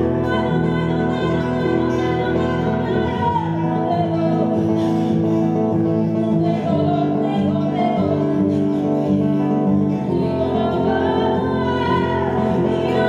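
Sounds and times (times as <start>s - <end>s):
nylon-string acoustic guitar chords: 0.0s - 13.0s.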